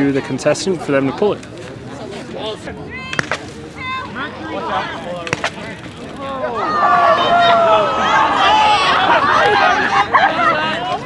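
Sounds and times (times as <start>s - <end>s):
spectators cheering: 6.1s - 11.0s.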